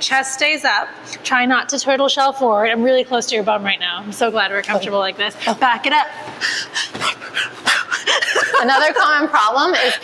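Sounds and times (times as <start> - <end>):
woman giggling breathily: 7.6 - 10.0.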